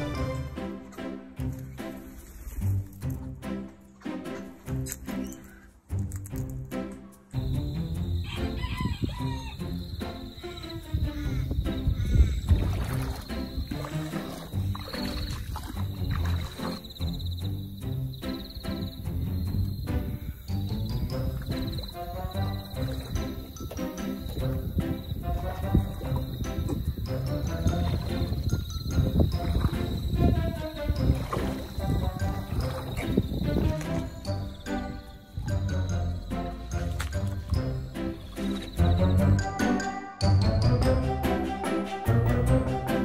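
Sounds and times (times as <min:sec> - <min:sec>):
background music: 0:00.0 - 0:43.0
rooster crowing: 0:08.2 - 0:09.8.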